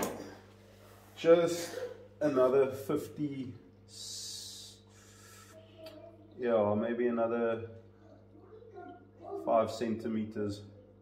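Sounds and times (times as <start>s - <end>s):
low electrical hum: 0.0s - 11.0s
short hissing breath: 4.1s - 5.6s.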